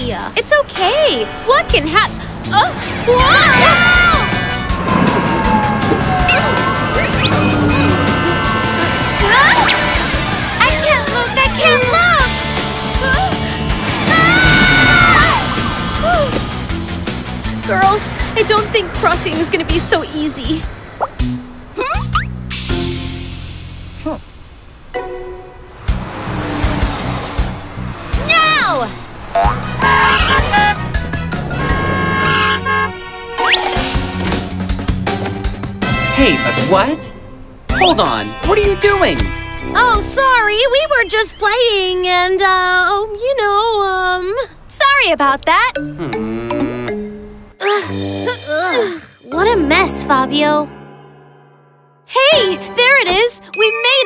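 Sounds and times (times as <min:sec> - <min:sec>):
background music: 0:00.0 - 0:42.9, 0:45.7 - 0:54.0.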